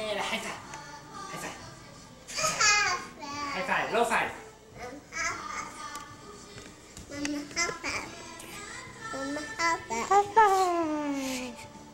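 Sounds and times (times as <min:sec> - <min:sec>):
toddler singing: 0:02.3 - 0:03.6, 0:04.7 - 0:06.4, 0:07.0 - 0:11.7.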